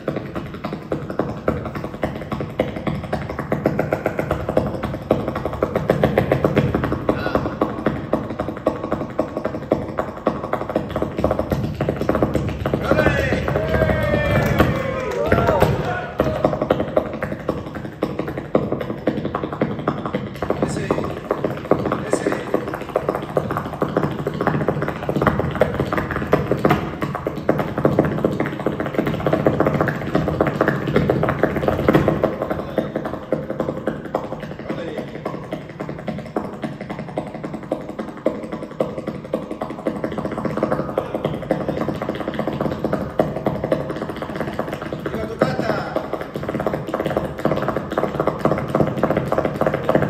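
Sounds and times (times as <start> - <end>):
fast heel and toe taps on stage: 0.0 - 50.0
flamenco guitar: 0.0 - 50.0.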